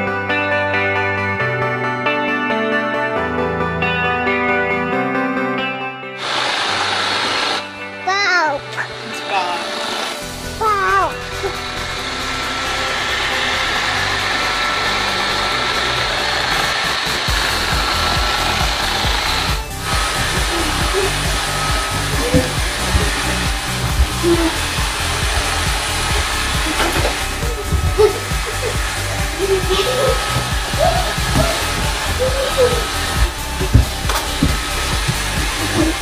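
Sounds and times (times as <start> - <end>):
guitar music: 0.0 - 36.0
robot vacuum running: 6.2 - 7.7, 8.9 - 36.0.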